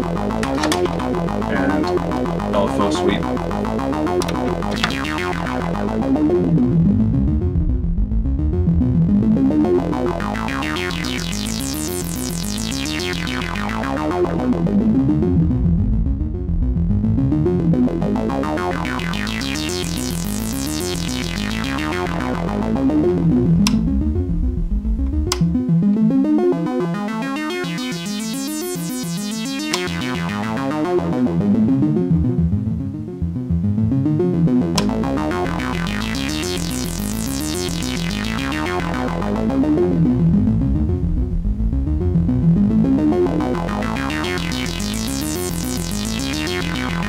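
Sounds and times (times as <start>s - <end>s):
synthesizer note sequence: 0.0s - 6.8s, 9.4s - 14.5s, 18.4s - 31.4s, 34.8s - 47.0s
low synth bass layer: 0.0s - 47.0s
sharp clicks: 0.3s - 1.0s, 4.2s - 5.2s, 23.6s - 23.9s, 29.6s - 30.0s, 34.8s - 35.0s.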